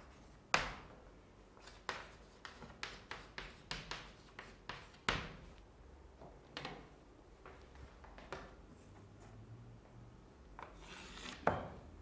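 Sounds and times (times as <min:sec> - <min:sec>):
chalk scratching on blackboard: 0:01.6 - 0:05.1.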